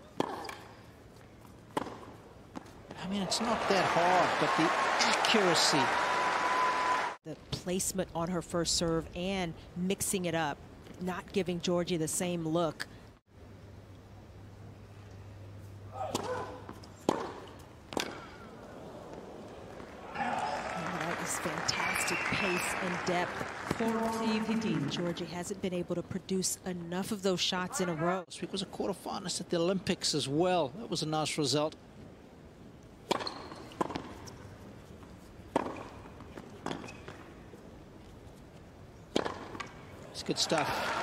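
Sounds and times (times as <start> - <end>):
faint arena ambience: 0.0 - 12.8, 13.5 - 41.0
racket hitting tennis ball: 0.1 - 0.7, 1.7 - 3.0, 16.0 - 18.5, 33.1 - 34.2, 35.5 - 37.1, 39.1 - 39.8
tennis racket striking ball: 16.0 - 18.4, 39.1 - 39.7.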